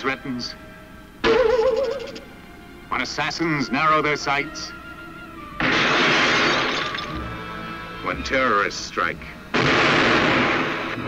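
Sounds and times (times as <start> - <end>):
film trailer music: 1.2 - 11.0
loud shattering crash: 5.6 - 7.3, 9.6 - 11.0.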